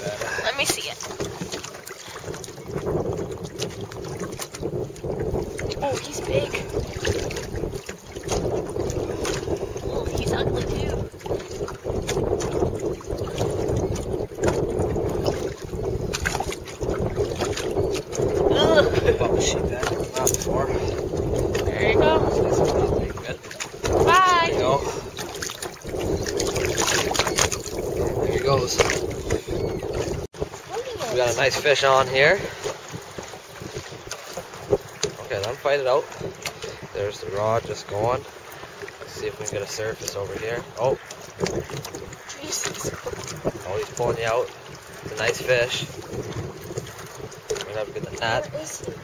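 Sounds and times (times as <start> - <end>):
choppy water on boat: 0.0 - 49.0
wind: 0.0 - 49.0.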